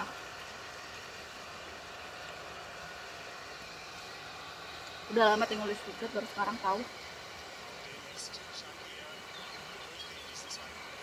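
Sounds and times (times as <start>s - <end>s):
steady rushing noise: 0.0s - 11.0s.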